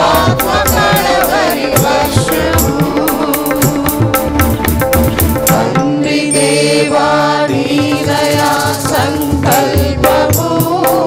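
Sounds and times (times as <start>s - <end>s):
women singing in unison: 0.0s - 4.5s, 5.4s - 11.0s
tabla strokes: 0.0s - 11.0s.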